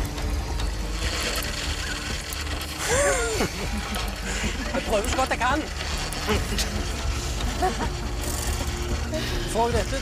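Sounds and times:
cream separator humming: 0:00.0 - 0:10.0.

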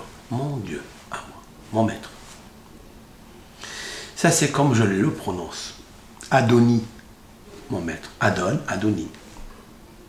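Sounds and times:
man speaking: 0:00.0 - 0:02.3, 0:04.2 - 0:07.0, 0:07.6 - 0:09.3
hissy breath in: 0:03.5 - 0:04.2.

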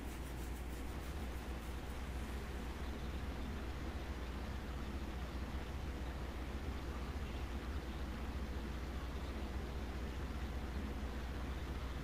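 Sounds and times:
low electrical hum: 0:00.0 - 0:12.0
soft even hiss: 0:00.0 - 0:12.0.

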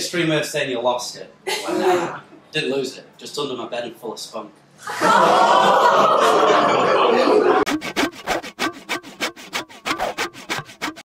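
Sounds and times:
hand saw cutting wood: 0:07.6 - 0:11.0.

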